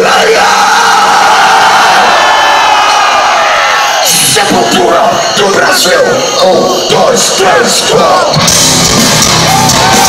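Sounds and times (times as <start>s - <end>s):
concert crowd cheering: 0.0s - 10.0s.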